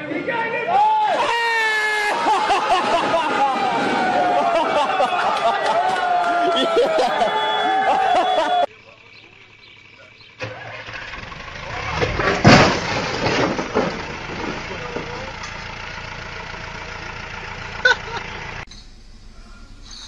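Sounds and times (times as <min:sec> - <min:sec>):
voices: 0:00.0 - 0:10.7, 0:13.7 - 0:18.4
vehicle engine running: 0:02.2 - 0:20.0.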